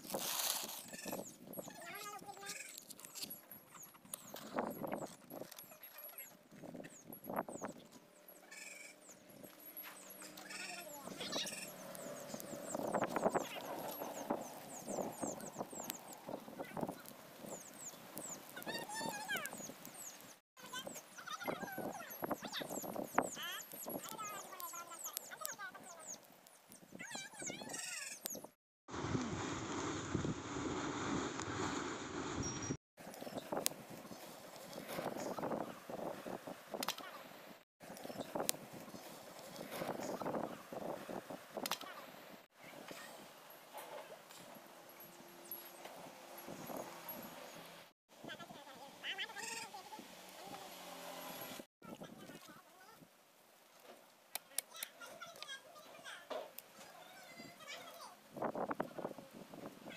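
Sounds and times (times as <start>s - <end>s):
match striking: 0.0s - 1.2s
fire crackling: 0.0s - 7.8s, 9.3s - 27.5s, 28.2s - 37.2s, 37.8s - 42.0s, 56.5s - 59.8s.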